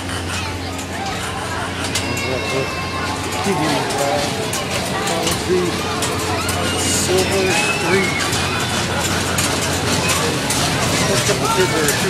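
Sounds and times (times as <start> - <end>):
carnival ride mechanical noise: 0.0 - 12.0
crowd voices: 0.0 - 12.0.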